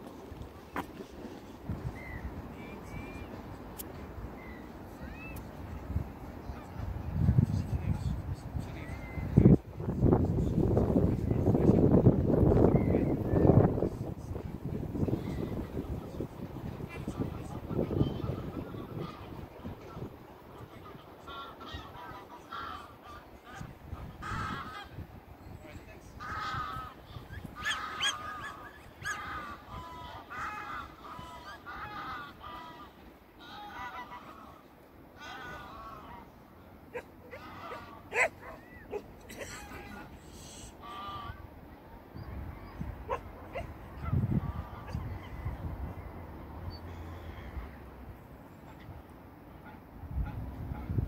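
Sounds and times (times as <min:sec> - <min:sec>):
wind rumble on microphone: 0:00.0 - 0:03.3, 0:05.5 - 0:21.1, 0:23.4 - 0:32.2, 0:42.2 - 0:48.2, 0:50.0 - 0:51.0
geese calling: 0:16.9 - 0:25.0, 0:26.2 - 0:41.5, 0:42.6 - 0:45.6
rising animal calls: 0:26.3 - 0:32.6, 0:36.9 - 0:41.4.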